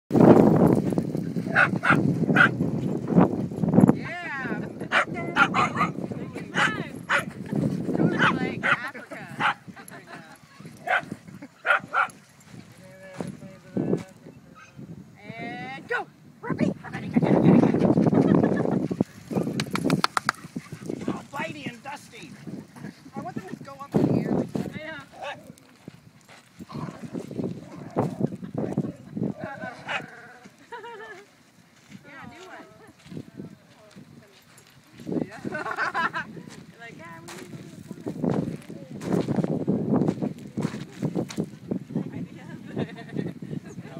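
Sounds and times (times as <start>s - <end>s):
small dogs barking: 1.5s - 2.6s, 4.8s - 7.3s, 8.1s - 9.7s, 10.8s - 12.2s, 29.4s - 30.3s
people laughing: 8.5s - 10.6s, 17.2s - 19.0s, 28.4s - 31.4s, 35.3s - 36.5s, 42.4s - 43.9s.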